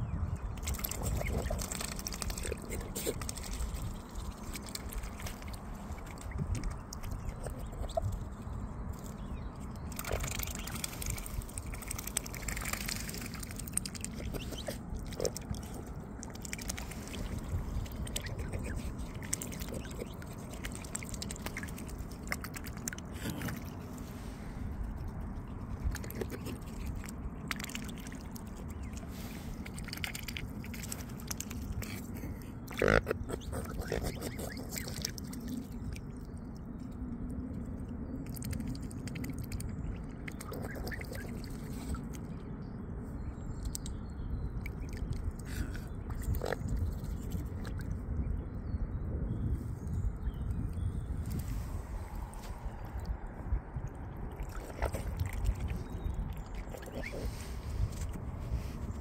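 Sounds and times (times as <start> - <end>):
bills splashing and slurping water: 0.3 - 59.0.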